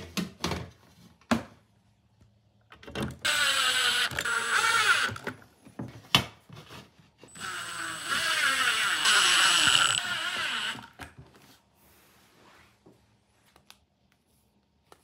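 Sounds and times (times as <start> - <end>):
cordless drill driving screws: 3.2 - 5.3, 7.3 - 11.0.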